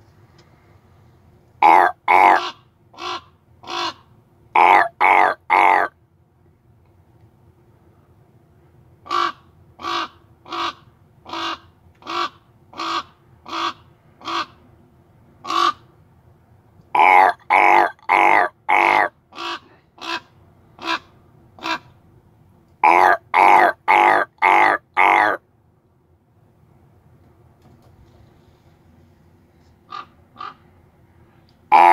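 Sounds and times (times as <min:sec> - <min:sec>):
crow cawing: 0:01.6 - 0:04.0, 0:04.6 - 0:05.9, 0:17.0 - 0:20.2, 0:22.8 - 0:25.4, 0:29.9 - 0:30.6.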